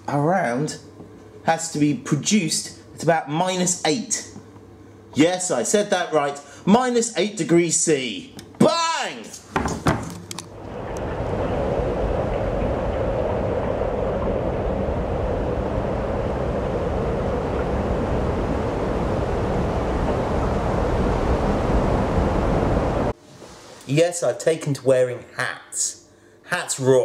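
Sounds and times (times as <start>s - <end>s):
rushing wind noise: 10.5s - 23.2s.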